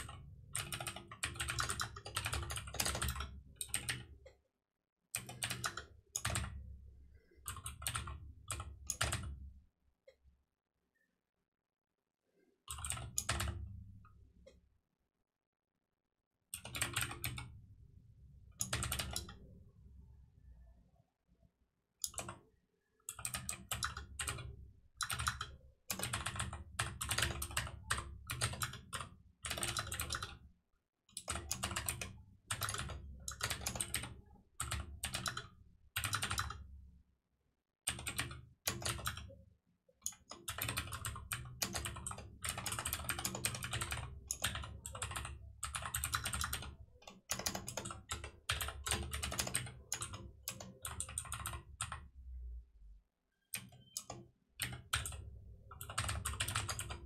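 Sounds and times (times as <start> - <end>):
typing on computer keyboard: 0.0 - 4.4, 5.1 - 6.6, 7.4 - 9.4, 12.7 - 13.8, 16.5 - 17.6, 18.6 - 19.5, 22.0 - 30.4, 31.1 - 36.7, 37.9 - 52.1, 53.4 - 57.0.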